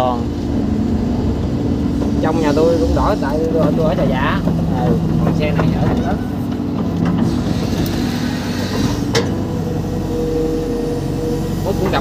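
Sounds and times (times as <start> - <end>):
excavator diesel engine under load: 0.0 - 12.0.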